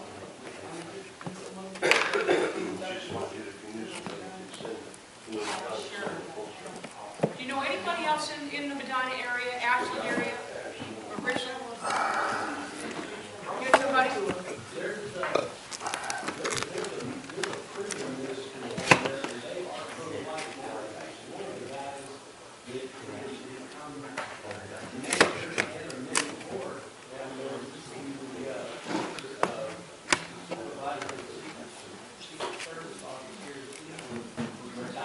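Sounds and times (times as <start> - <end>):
voices murmuring: 0.0 - 35.0.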